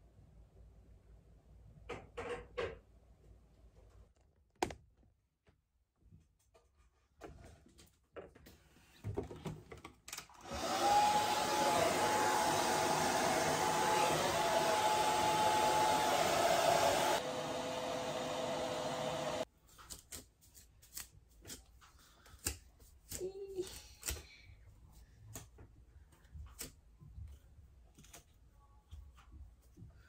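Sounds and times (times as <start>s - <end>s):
hair dryer blowing: 10.4s - 19.5s.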